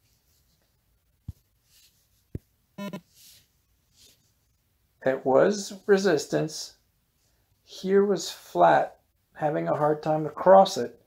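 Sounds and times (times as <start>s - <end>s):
phone screenshot blip: 2.8s - 3.0s.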